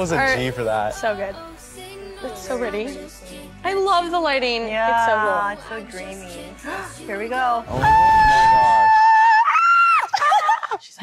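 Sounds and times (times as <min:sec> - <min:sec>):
woman screaming in fright: 0:07.7 - 0:10.2.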